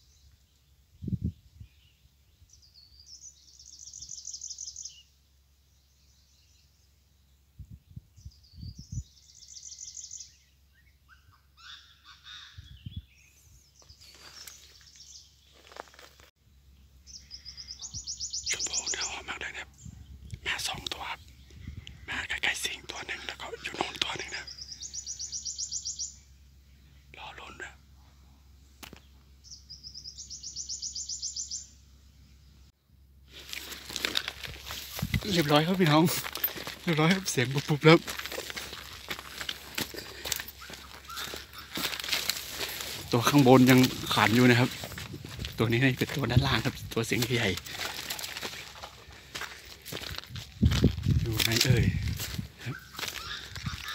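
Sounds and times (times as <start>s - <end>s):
birds calling: 0.0s - 7.5s, 8.2s - 32.7s, 33.3s - 53.9s
rough bird calls: 9.2s - 16.2s, 17.1s - 19.8s, 20.4s - 31.8s, 33.3s - 50.3s, 51.1s - 53.9s.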